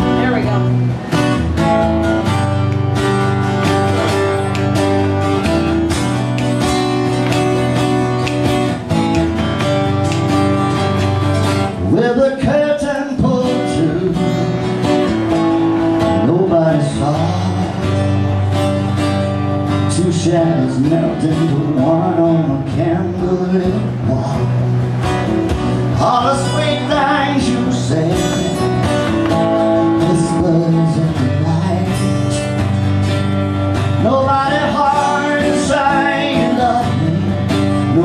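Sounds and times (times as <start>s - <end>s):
acoustic guitars playing: 0.0s - 38.0s.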